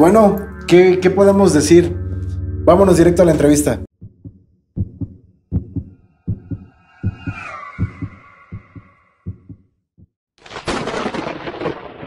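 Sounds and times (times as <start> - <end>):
heartbeat low thumps: 4.0 - 10.1
high drawn-out sliding tone: 6.0 - 9.2.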